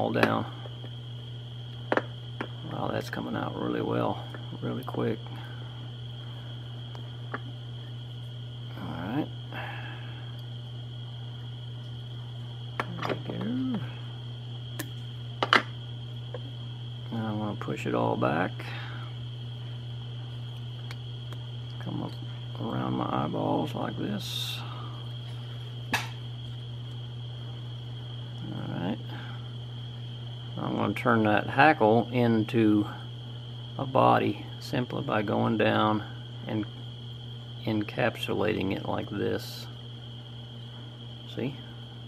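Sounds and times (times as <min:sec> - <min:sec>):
low hum: 0:00.0 - 0:37.9
thin high whine: 0:00.0 - 0:42.0
high-pitched whine: 0:01.9 - 0:19.8.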